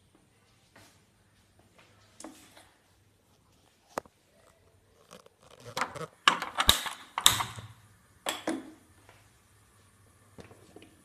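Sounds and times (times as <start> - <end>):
stove knob turning: 5.5 - 7.7
stove igniter clicking: 6.3 - 8.7.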